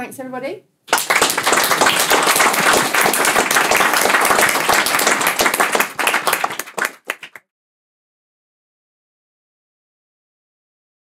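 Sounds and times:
audience applauding: 0.9 - 7.5.

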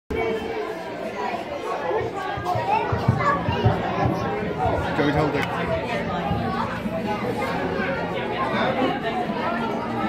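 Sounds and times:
children chattering and calling out: 0.1 - 10.0.

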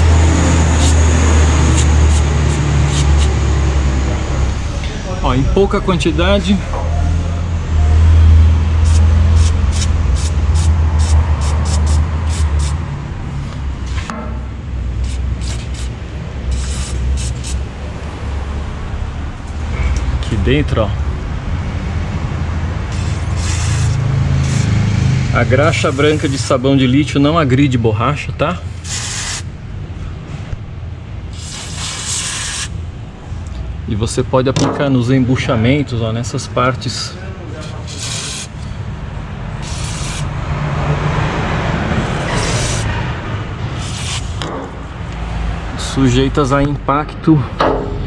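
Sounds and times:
low rumble: 0.0 - 10.1, 17.6 - 23.0
loud low steady hum: 0.0 - 32.0, 32.6 - 48.0
aerosol can spraying squirts: 0.8 - 3.4, 8.8 - 12.8, 15.0 - 17.6, 22.9 - 24.8, 28.8 - 29.4, 31.4 - 32.7, 37.6 - 38.6, 39.6 - 40.3, 42.2 - 42.9, 43.8 - 44.4.

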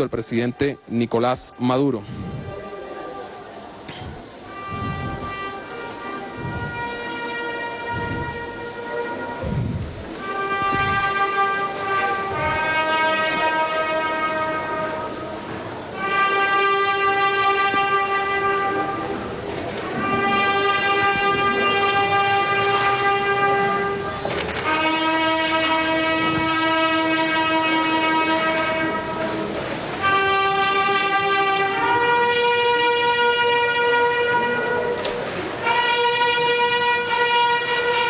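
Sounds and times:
brass instrument long note: 0.7 - 3.7, 4.3 - 38.0.

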